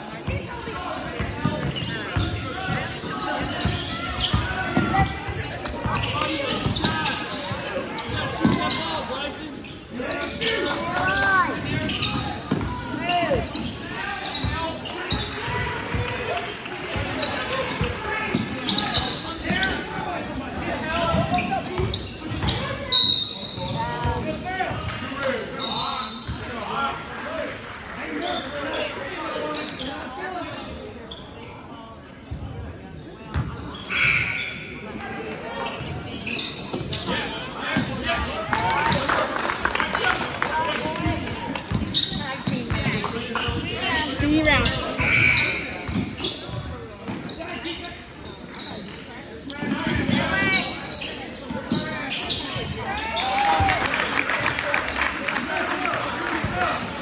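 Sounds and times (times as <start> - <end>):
sneakers squeaking: 0.0 - 26.8, 28.0 - 39.1, 40.8 - 53.8, 56.2 - 57.0
basketballs bouncing: 8.2 - 8.8, 11.5 - 14.5, 40.9 - 44.8, 45.8 - 46.3.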